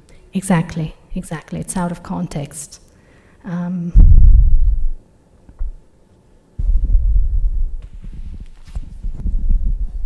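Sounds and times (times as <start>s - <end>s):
microphone handling thumps and rustles: 4.0s - 5.0s, 5.6s - 5.8s, 6.6s - 10.0s.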